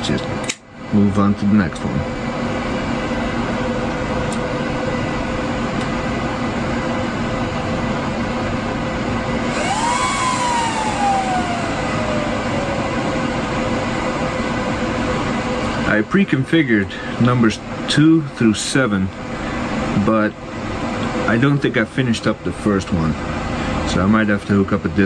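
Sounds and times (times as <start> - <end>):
server fans humming: 0.0 - 24.9
server fans spinning up whine: 0.0 - 25.0.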